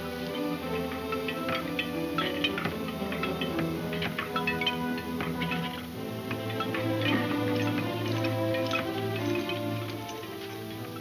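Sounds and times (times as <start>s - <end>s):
dramatic film score music: 0.0s - 11.0s.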